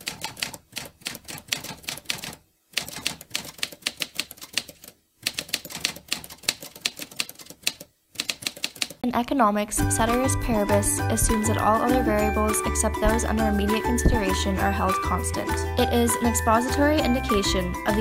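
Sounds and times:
typewriter keys clacking: 0.0 - 9.0.

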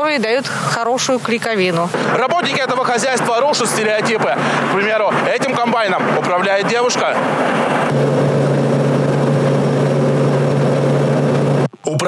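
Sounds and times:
combine harvester engine drone: 2.0 - 12.0.

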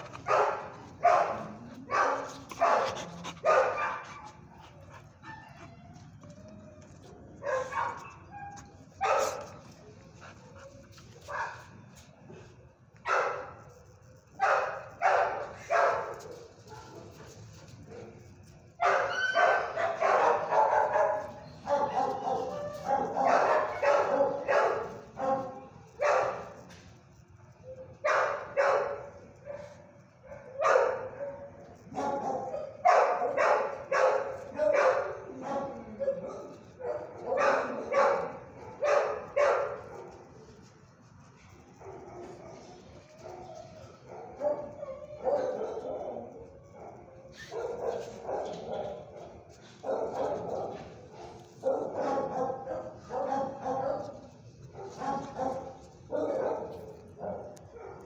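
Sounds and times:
dogs barking: 0.0 - 5.6, 7.4 - 9.6, 14.4 - 17.1, 18.8 - 26.6, 28.0 - 40.3, 41.5 - 58.0.

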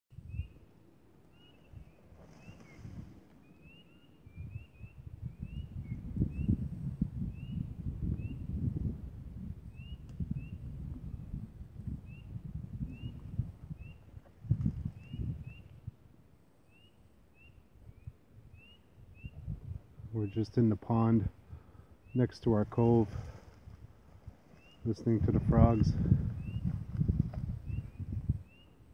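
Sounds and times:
spring peepers calling: 1.3 - 6.6, 16.6 - 19.5, 27.7 - 28.9
low rumble on microphone: 4.2 - 16.1, 17.8 - 28.9.

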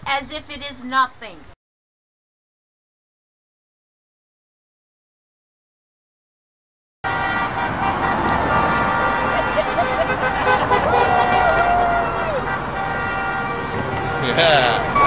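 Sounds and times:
street traffic: 0.0 - 1.6, 7.0 - 15.0
voices: 0.0 - 1.6, 14.2 - 15.0
car horns honking: 7.0 - 15.0.

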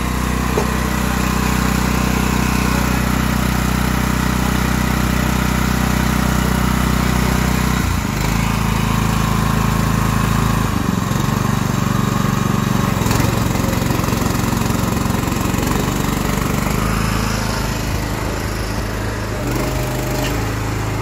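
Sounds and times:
petrol engine running: 0.0 - 21.0.

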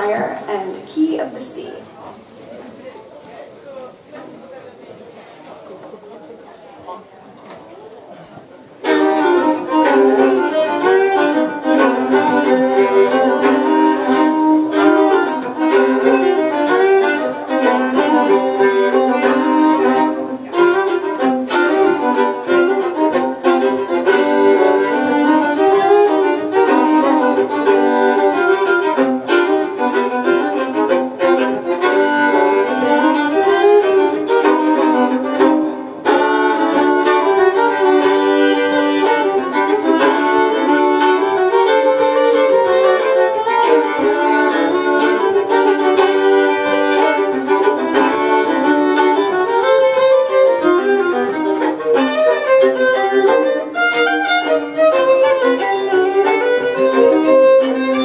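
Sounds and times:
two fiddles playing folk music: 8.4 - 58.0.

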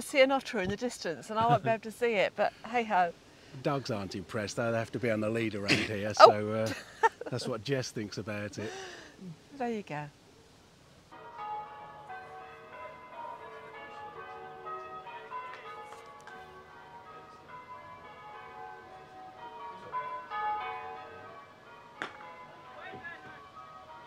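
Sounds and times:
church bells change ringing: 11.1 - 24.0.

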